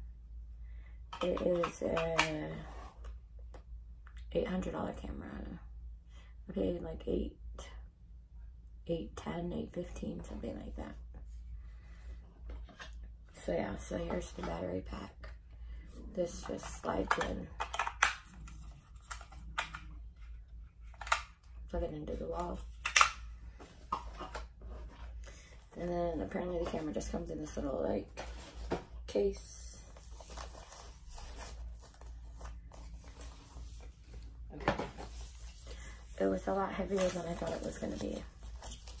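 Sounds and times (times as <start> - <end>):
packaging rustling: 30.0 - 34.2, 36.8 - 39.0.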